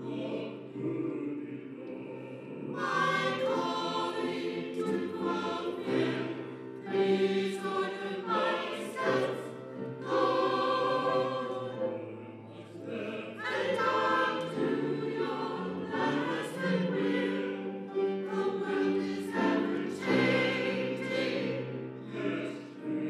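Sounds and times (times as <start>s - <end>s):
mixed choir singing: 0.0s - 23.0s.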